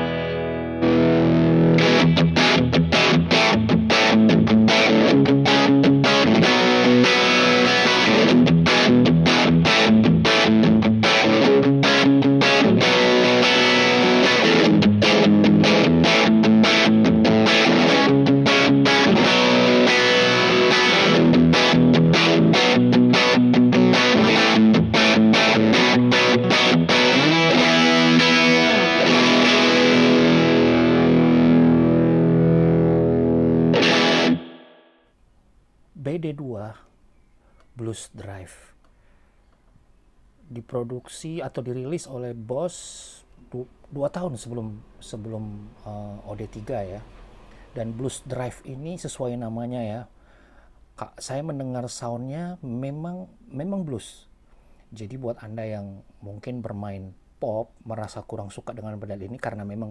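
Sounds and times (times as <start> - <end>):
overdriven electric guitar riff: 0.0 - 35.0.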